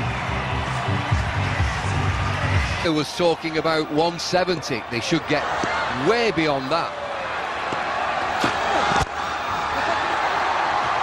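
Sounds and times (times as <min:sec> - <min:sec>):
stadium crowd noise: 0:00.0 - 0:11.0
cricket bat striking ball: 0:05.5 - 0:05.8.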